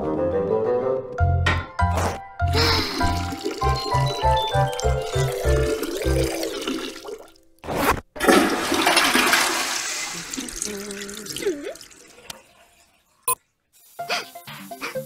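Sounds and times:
toilet flushing: 2.5s - 7.4s, 8.2s - 13.3s.

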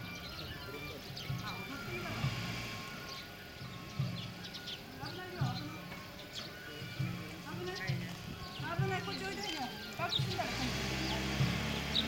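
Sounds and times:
festival music: 0.0s - 12.0s
people's voices: 0.0s - 12.0s
taiko drum beats: 6.8s - 9.4s.

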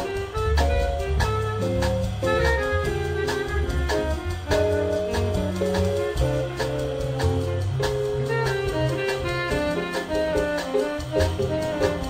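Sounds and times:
bass notes: 0.0s - 12.0s
horns holding notes: 0.0s - 12.0s
steady cymbal beat: 0.0s - 12.0s.

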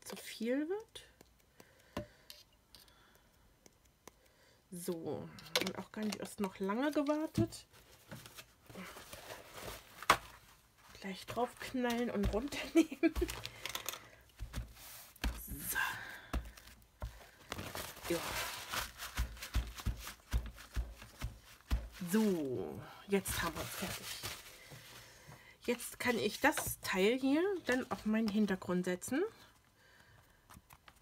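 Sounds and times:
paper towel crinkling: 7.7s - 13.5s, 16.5s - 25.2s
hands patting paper towel: 11.2s - 13.4s, 14.4s - 22.6s.

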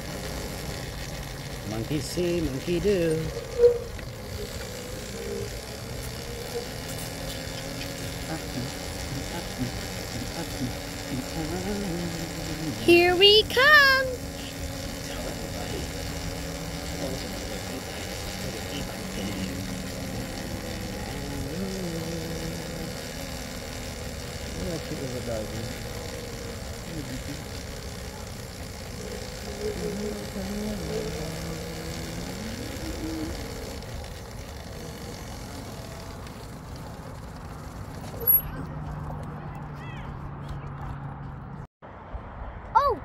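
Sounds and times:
wind rumble while cycling: 0.0s - 21.5s, 22.3s - 24.6s, 25.6s - 39.3s
people talking: 1.6s - 3.4s, 7.3s - 16.2s, 16.9s - 23.0s, 24.5s - 26.2s, 26.8s - 28.5s, 29.4s - 33.5s, 42.8s - 43.0s
person exclaiming: 42.8s - 43.0s.

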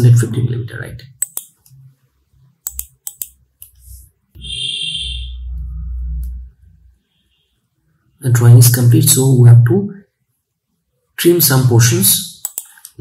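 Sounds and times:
computer mouse clicks: 1.2s - 1.8s, 2.6s - 3.9s, 12.4s - 13.0s
low rumble with high ringing tone: 5.1s - 6.8s.

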